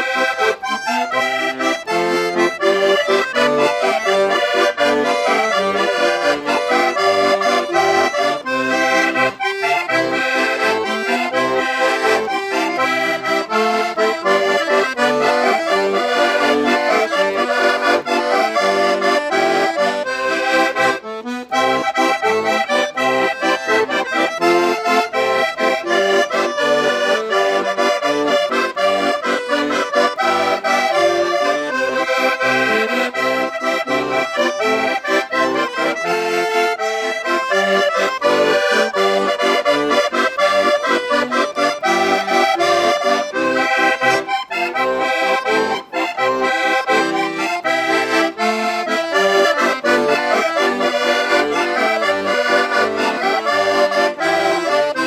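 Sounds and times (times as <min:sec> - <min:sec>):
accordions playing dance tune: 0:00.0 - 0:55.0.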